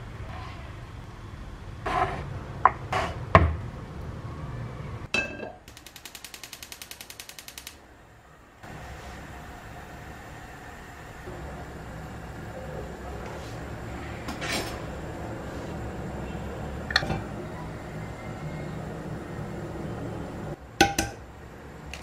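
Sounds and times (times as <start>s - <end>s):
rapid even ticking: 5.7s - 7.8s.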